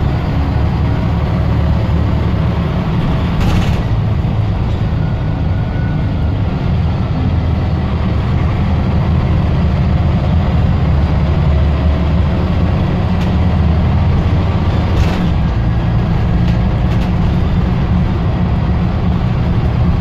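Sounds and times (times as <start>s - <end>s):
bus engine drone: 0.0s - 20.0s
road noise: 0.0s - 20.0s.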